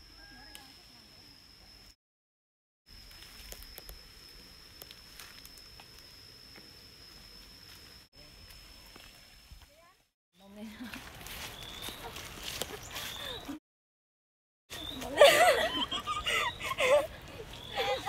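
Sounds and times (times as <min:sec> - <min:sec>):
high-pitched whine: 0:00.0 - 0:02.0, 0:02.9 - 0:09.9.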